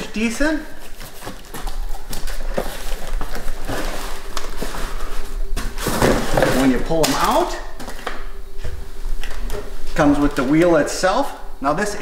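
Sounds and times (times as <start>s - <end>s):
cardboard flaps rustling: 0.8s - 8.8s.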